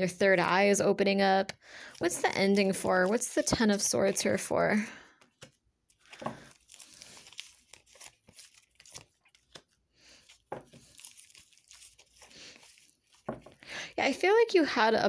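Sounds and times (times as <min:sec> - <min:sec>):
cards shuffling and rustling: 0:01.8 - 0:04.5, 0:05.2 - 0:13.6.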